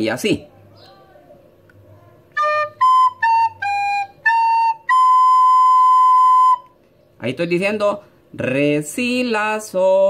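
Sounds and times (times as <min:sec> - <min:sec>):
recorder playing slow notes: 0:02.3 - 0:06.8.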